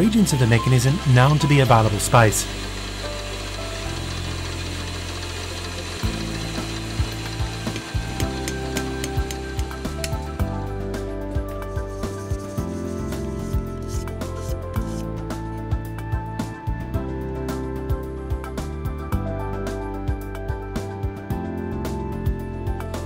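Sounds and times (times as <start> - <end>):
background music of held notes: 0.0 - 23.0.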